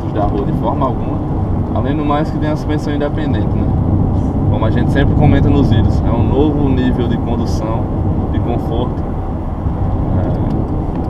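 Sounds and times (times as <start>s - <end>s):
car engine hum: 0.0s - 11.0s.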